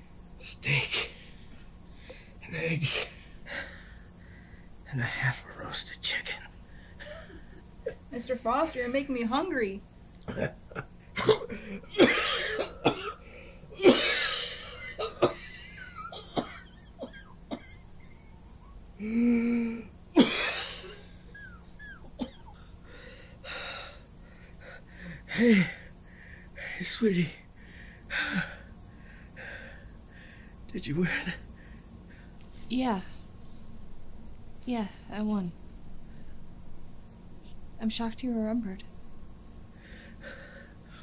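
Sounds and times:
faint room hum: 0.0 - 41.0
man breathing laboriously: 1.9 - 2.4, 3.4 - 4.8, 18.2 - 19.9, 21.3 - 26.8, 27.6 - 32.4, 39.7 - 41.0
man breathing in: 3.5 - 4.7, 26.0 - 26.8, 27.6 - 30.6, 39.7 - 41.0.

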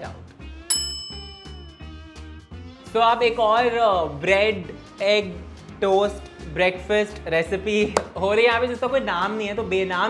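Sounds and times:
bell-like ding: 0.7 - 2.5
background music with low beat: 5.8 - 8.8.

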